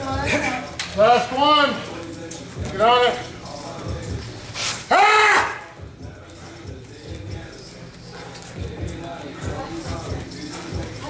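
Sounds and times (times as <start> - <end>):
faint background talk: 0.0 - 4.6, 5.2 - 11.0
person shouting call: 4.9 - 5.7.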